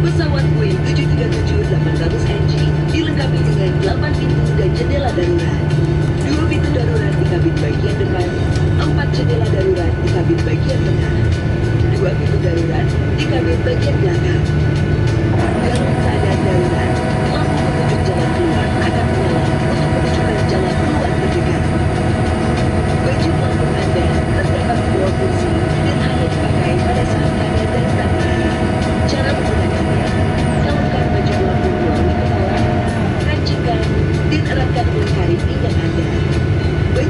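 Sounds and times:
airliner cabin drone: 0:00.0 - 0:37.0.

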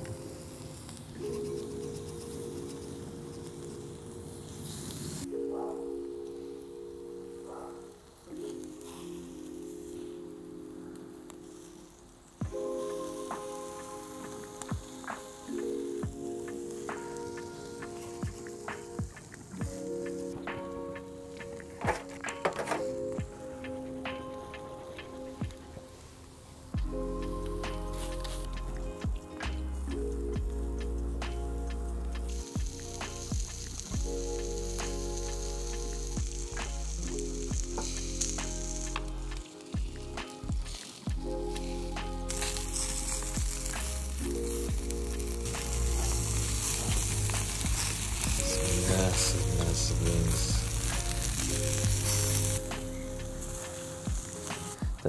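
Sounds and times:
skewers sizzling on a grill: 0:00.0 - 0:06.7, 0:07.4 - 0:55.0
background music with bass line: 0:26.8 - 0:55.0.

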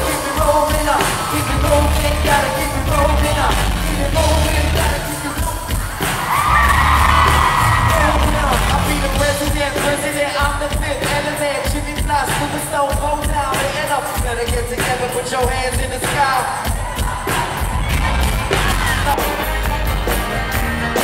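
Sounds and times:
singing: 0:00.0 - 0:19.2
live pop music with heavy bass: 0:00.0 - 0:21.0.

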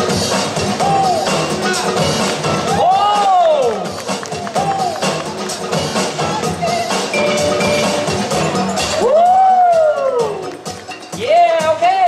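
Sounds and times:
battle music: 0:07.1 - 0:09.8
man exclaiming over loudspeaker: 0:11.2 - 0:12.0.

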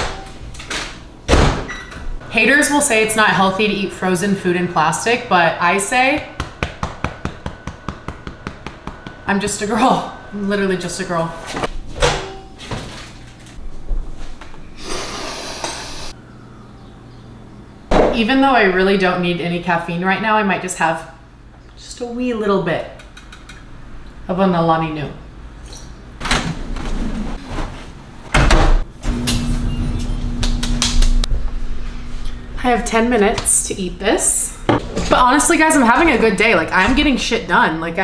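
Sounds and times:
clothes dryer running: 0:00.0 - 0:16.2, 0:26.2 - 0:38.0.

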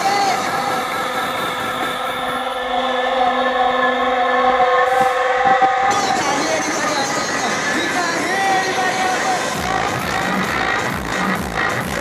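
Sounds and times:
held synthesizer chord: 0:00.8 - 0:07.8.

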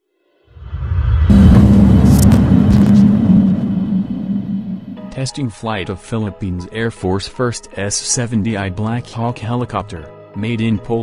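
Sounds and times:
loud deep rumble: 0:00.6 - 0:05.3
steady low hum: 0:00.7 - 0:05.2.

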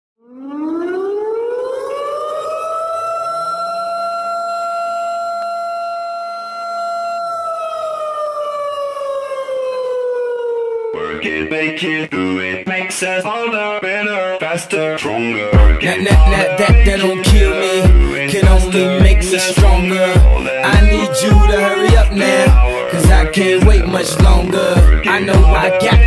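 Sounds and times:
air raid siren winding: 0:00.2 - 0:11.0
music with a beat: 0:15.6 - 0:26.0.

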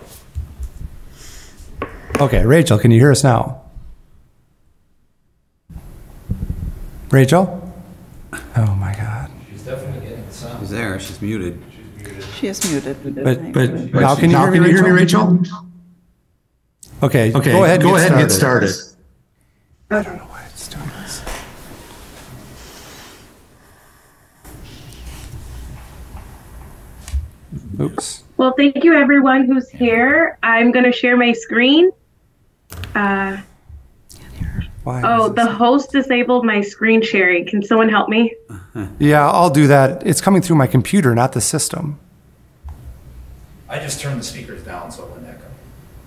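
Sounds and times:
voice echoing in a room: 0:07.1 - 0:16.2, 0:16.9 - 0:19.2, 0:27.5 - 0:32.0, 0:32.9 - 0:42.2.

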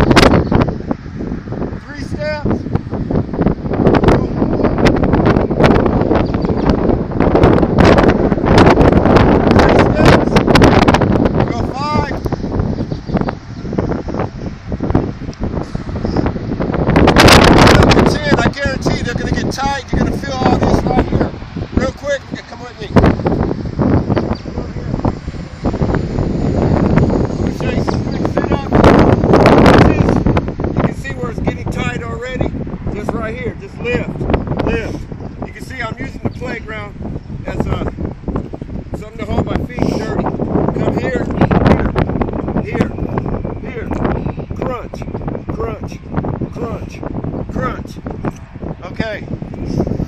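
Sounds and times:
wind buffeting microphone: 0:00.0 - 0:50.0.

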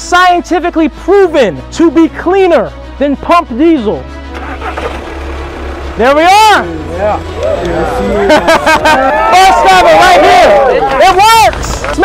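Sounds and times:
background music: 0:00.0 - 0:12.0
diesel engine starting and running: 0:03.8 - 0:12.0.

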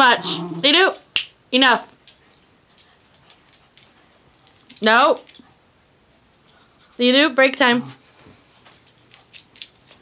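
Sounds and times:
dog claws clicking on floor: 0:02.0 - 0:05.6, 0:08.6 - 0:10.0.

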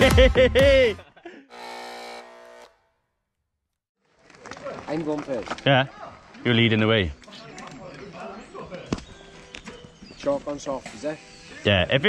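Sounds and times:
electronic buzzing tone: 0:01.5 - 0:02.9.

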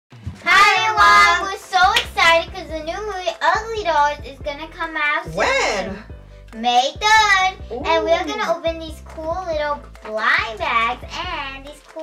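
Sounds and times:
child singing: 0:00.4 - 0:05.5.

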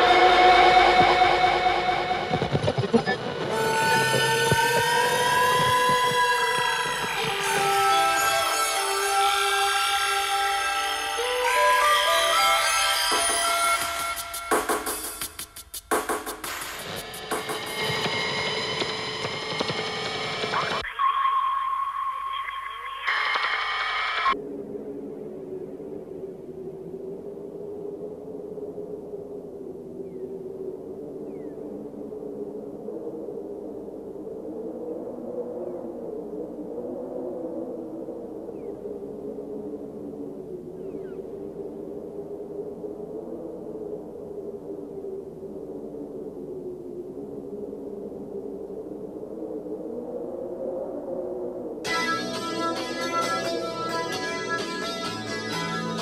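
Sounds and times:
low synthesizer drone: 0:00.0 - 0:13.9, 0:51.9 - 0:56.0.

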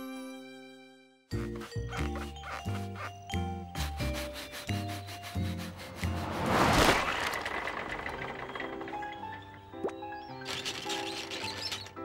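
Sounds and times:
bouncy cartoon music: 0:01.3 - 0:06.2.

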